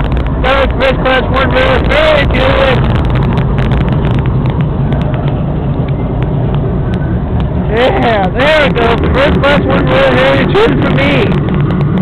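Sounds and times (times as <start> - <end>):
train rumbling: 0.0 - 12.0.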